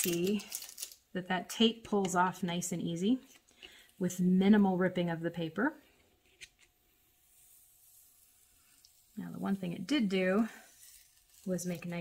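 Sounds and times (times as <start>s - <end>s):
tape peeling off paper: 10.6s - 12.0s.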